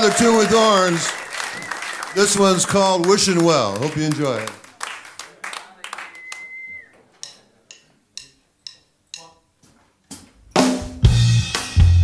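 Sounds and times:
drumsticks clicked together: 7.2 - 9.4
drum kit: 10.1 - 12.0.

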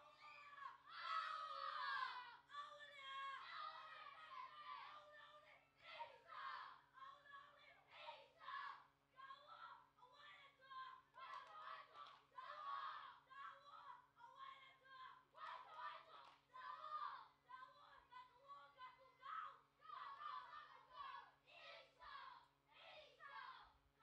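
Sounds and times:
boys shouting a chant: 0.0 - 23.8.

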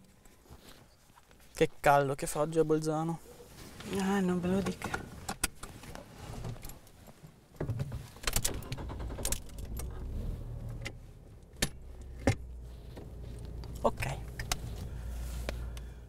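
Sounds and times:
clicks and rattles of controls: 7.6 - 14.8
car engine starting and idling: 8.4 - 16.0.

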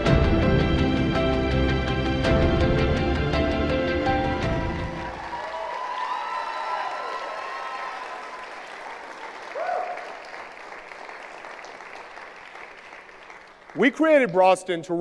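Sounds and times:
audience applause: 4.4 - 14.4.

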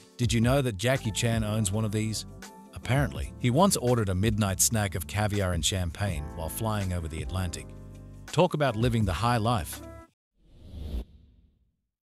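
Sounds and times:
whoosh sound effect: 10.4 - 11.5.

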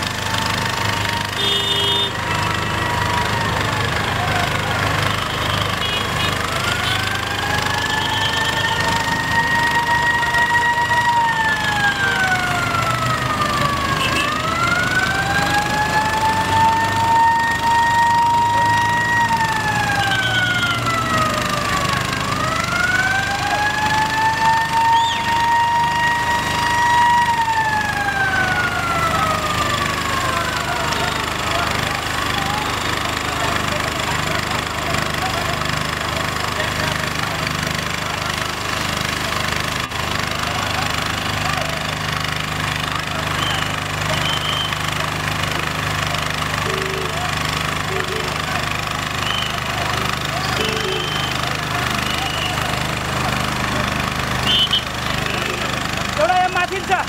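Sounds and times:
emergency vehicle siren wailing: 0.0 - 57.0
street noise: 0.0 - 57.0
voices: 0.3 - 57.0.

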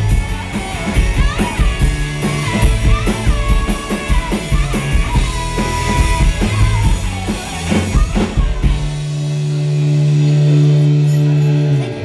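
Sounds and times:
rock band closing chord: 0.0 - 12.0.

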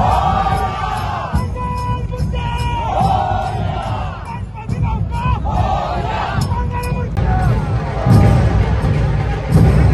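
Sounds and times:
crowd shouting and chanting: 0.0 - 9.9
drumming: 0.0 - 9.9.

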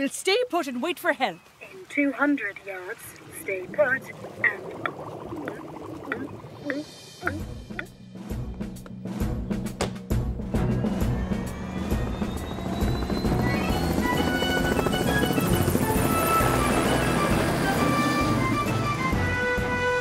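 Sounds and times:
background music: 5.0 - 20.0
helicopter engine whine: 10.6 - 19.2
helicopter rotor chopping: 10.8 - 19.1.

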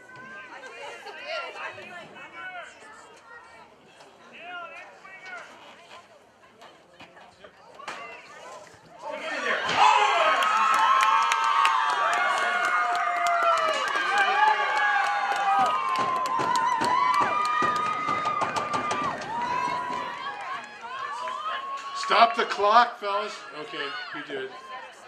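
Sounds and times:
crowd cheering and screaming: 9.6 - 22.3.

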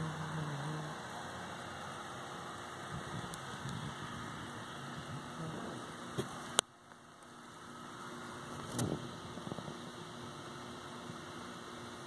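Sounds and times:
cicadas droning: 0.0 - 12.0.

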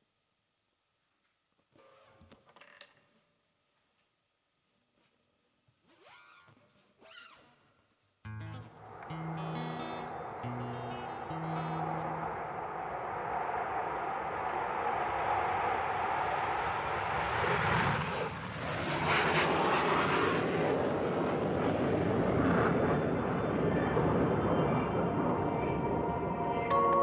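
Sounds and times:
plucked acoustic guitar notes: 8.3 - 12.3
whooshing sweep: 8.6 - 20.8
loud engine-like rushing noise: 8.7 - 24.2.

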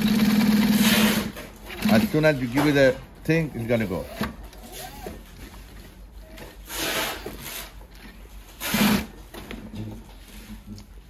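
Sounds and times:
sewing machine stitching: 0.0 - 2.3.

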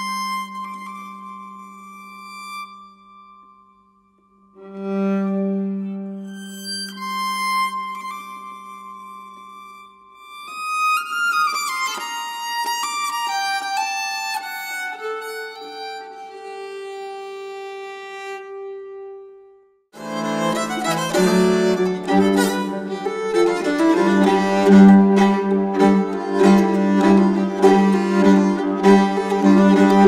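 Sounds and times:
slow bowed string melody: 0.0 - 3.9, 4.5 - 19.4, 20.0 - 30.0
busy bowed string tune: 20.0 - 30.0.

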